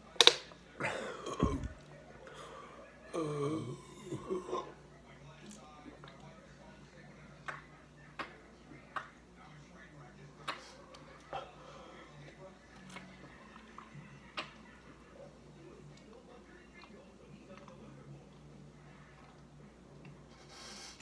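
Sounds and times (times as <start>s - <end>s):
person gulping soda: 0.8s - 1.9s.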